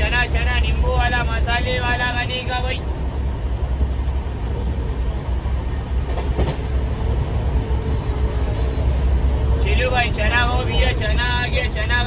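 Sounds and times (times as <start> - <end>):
train coach rumbling on track: 0.0 - 12.0.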